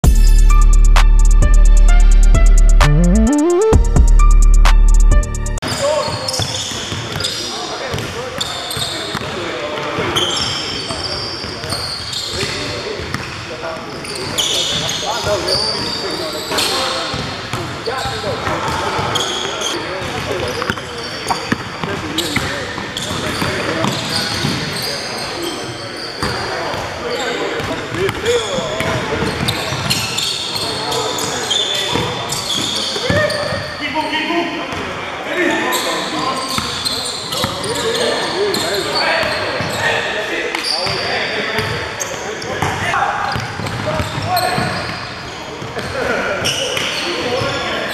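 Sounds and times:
players calling out: 0.0s - 5.6s
sneakers squeaking on gym floor: 5.6s - 34.2s, 35.7s - 47.9s.

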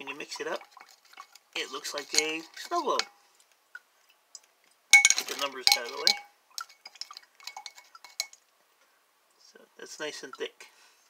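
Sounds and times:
glass beaker clinks: 5.0s - 6.3s.

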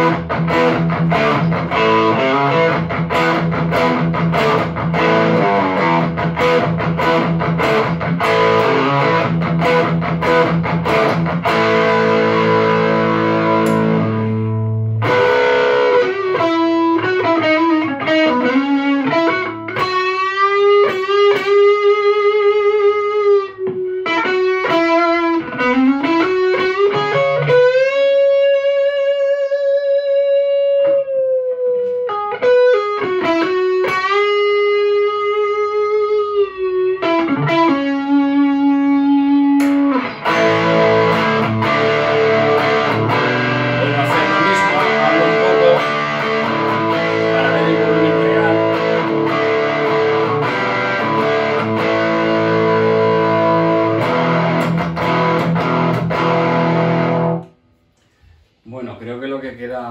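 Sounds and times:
electric guitar lead playing: 0.0s - 57.8s.

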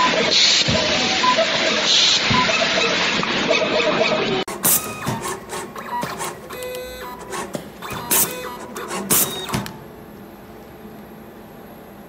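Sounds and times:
machine clacks: 4.5s - 9.8s
motor whines: 4.5s - 9.8s.

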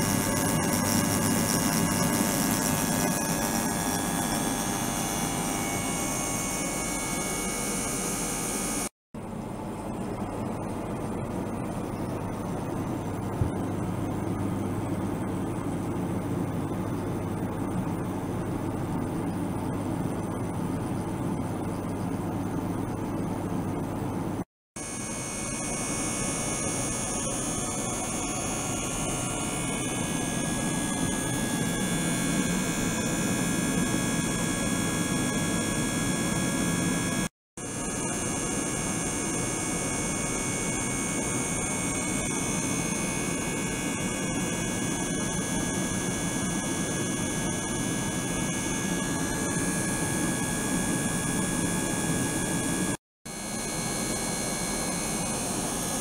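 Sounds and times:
pump hum and hiss: 0.0s - 56.0s.

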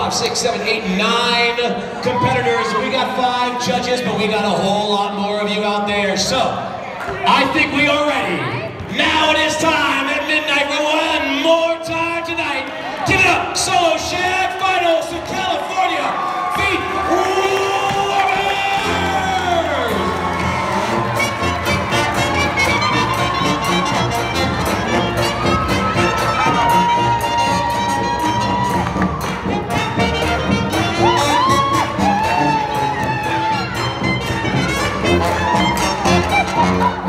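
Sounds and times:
crowd cheering and whooping: 2.0s - 3.6s, 15.2s - 37.0s
swing band with horns: 17.8s - 37.0s.

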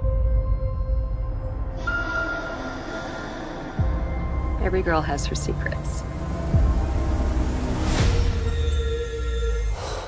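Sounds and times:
low rumbling drone: 0.0s - 10.0s.

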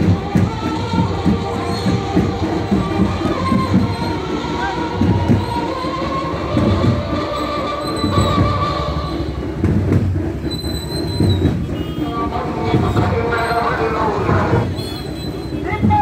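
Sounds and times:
low drum beat: 0.0s - 16.0s
marching crowd: 0.0s - 16.0s
motorbikes: 0.0s - 16.0s.

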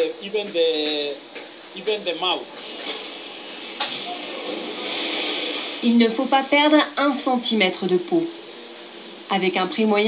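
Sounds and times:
man talking on television: 0.0s - 3.0s
steady hiss: 0.0s - 10.0s.

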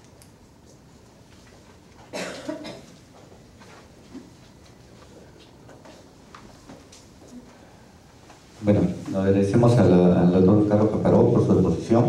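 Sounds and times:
person coughing: 2.1s - 3.0s.

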